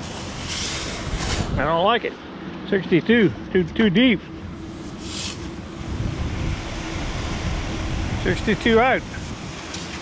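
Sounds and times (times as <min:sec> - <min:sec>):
steady low hum: 0:00.0 - 0:10.0
wind on microphone: 0:00.3 - 0:01.8, 0:04.5 - 0:10.0.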